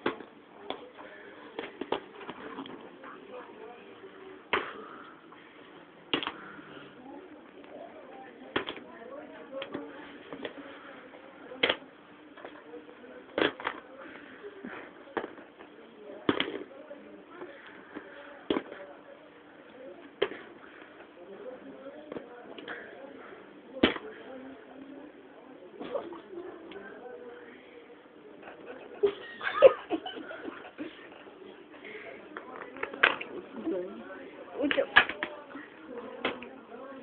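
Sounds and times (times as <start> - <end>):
faint low talking: 0.0 - 37.0.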